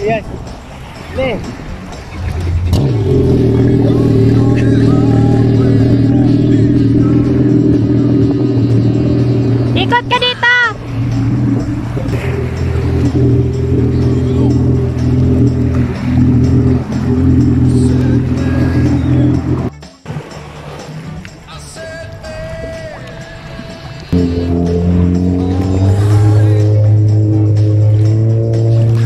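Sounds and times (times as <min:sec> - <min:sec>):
jet ski engine idling: 0:01.6 - 0:29.0
high rising-and-falling tones: 0:24.1 - 0:28.8.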